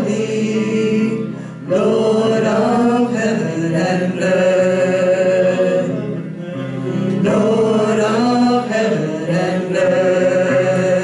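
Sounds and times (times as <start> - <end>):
guitar accompaniment: 0.0 - 11.0
voices singing held notes: 0.0 - 11.0.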